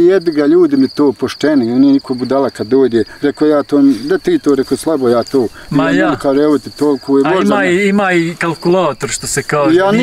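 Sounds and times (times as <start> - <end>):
crickets chirring: 0.0 - 10.0
man talking: 0.0 - 10.0.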